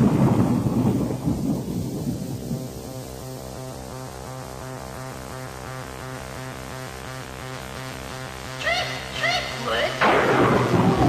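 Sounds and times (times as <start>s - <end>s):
thunder and rain effect: 0.0s - 2.6s, 10.0s - 11.0s
sustained synth bass: 0.0s - 11.0s
synth pad: 0.0s - 11.0s.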